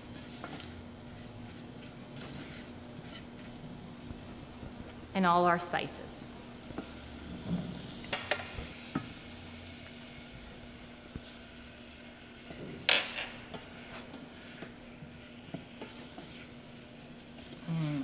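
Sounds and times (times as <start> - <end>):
wooden spoon stirring in saucepan: 0.0 - 5.0, 6.6 - 8.0, 11.1 - 17.7
faint sizzle: 0.0 - 18.0
steady low hum: 0.0 - 18.0.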